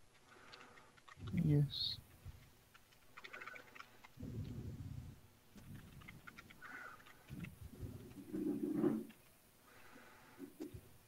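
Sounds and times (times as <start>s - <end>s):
soft low thumps: 4.2s - 6.0s.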